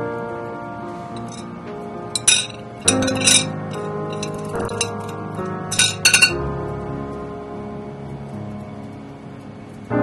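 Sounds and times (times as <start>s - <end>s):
metal clinking on glass: 1.2s - 1.5s, 2.2s - 6.4s.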